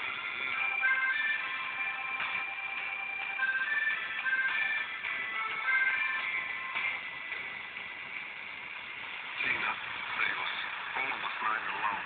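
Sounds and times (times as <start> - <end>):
radio static hiss: 6.9 - 12.0
voice speaking over radio: 9.4 - 12.0.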